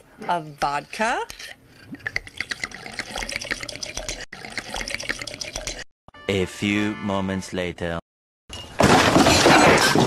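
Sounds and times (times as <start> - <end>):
liquid glugging into a cup: 1.4 - 5.9.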